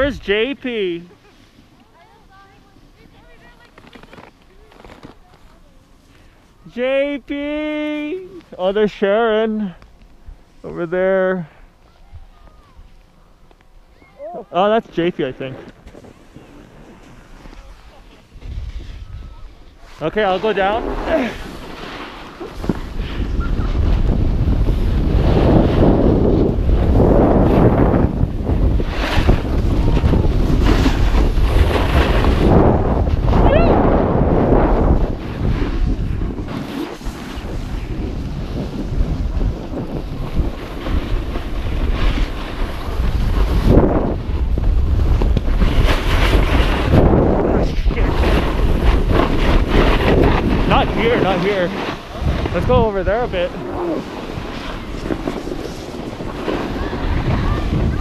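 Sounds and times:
wind rushing over microphone: 0:00.0 - 0:01.0, 0:16.0 - 0:58.0
snowboard scraping packed snow: 0:00.0 - 0:09.8, 0:14.6 - 0:58.0.

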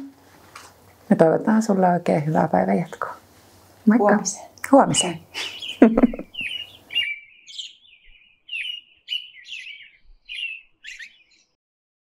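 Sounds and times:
bird chirping: 0:04.1 - 0:11.6.

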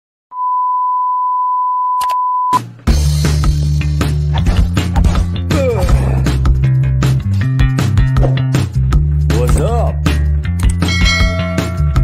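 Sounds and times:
steady test tone beep: 0:00.3 - 0:02.6.

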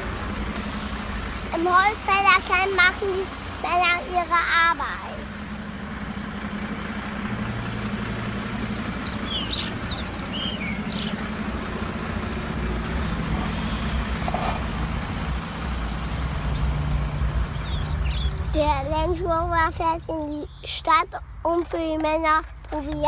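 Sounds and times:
truck engine idling: 0:00.0 - 0:23.0
air brake hiss: 0:00.6 - 0:01.2, 0:13.4 - 0:14.1.

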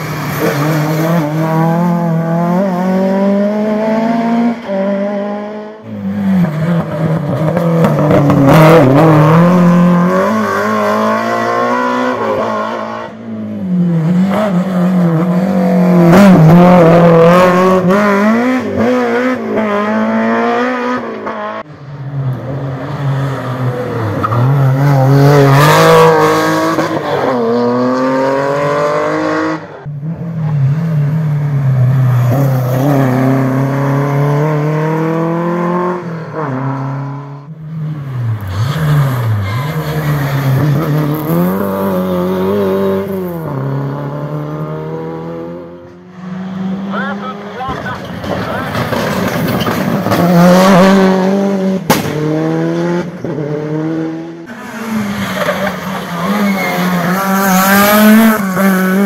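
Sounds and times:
engine revs rising and falling: 0:00.0 - 0:21.7, 0:22.4 - 0:47.9, 0:48.5 - 0:59.0
rally cars passing: 0:00.0 - 0:59.0.

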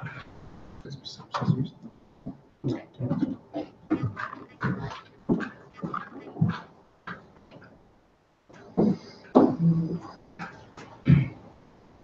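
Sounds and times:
quiet indistinct voices: 0:00.0 - 0:07.2.

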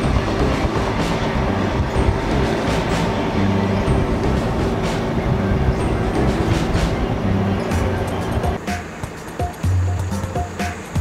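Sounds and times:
vehicle rumble from inside cabin: 0:00.0 - 0:08.6
tyres on road: 0:00.0 - 0:11.0.

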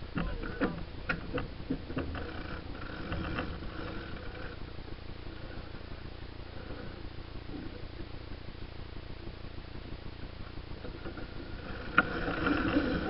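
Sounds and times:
wind: 0:00.0 - 0:13.0.

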